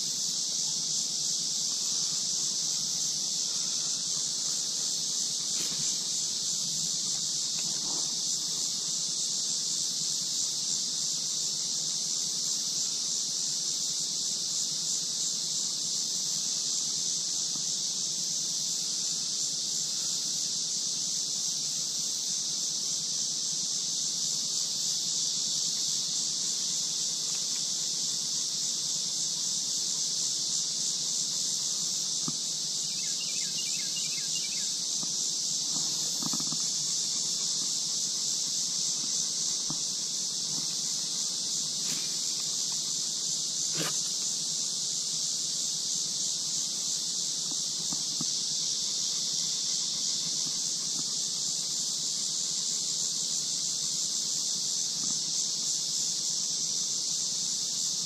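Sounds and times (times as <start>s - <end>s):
cicada chorus buzzing: 0.0s - 58.0s
faint ticks: 34.9s - 37.8s, 47.4s - 48.4s, 50.1s - 51.1s, 55.0s - 55.2s.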